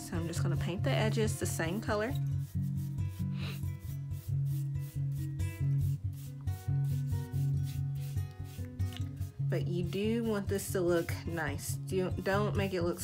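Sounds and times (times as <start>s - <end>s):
paintbrush scrubbing canvas: 0.0s - 13.0s.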